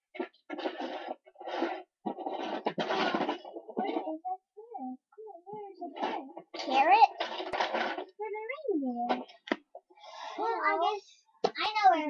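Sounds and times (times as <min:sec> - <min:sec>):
plastic toys clattering on carpet: 0:00.2 - 0:04.1, 0:06.0 - 0:08.1.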